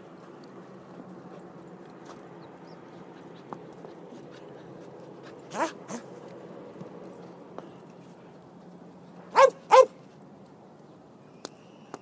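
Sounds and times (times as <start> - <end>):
dog barking: 5.5 - 6.0, 9.3 - 10.0.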